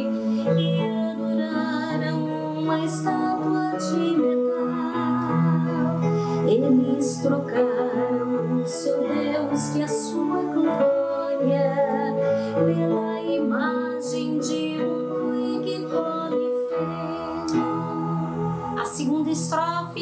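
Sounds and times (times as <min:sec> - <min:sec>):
electronic keyboard chords: 0:00.0 - 0:20.0
woman singing: 0:00.0 - 0:20.0.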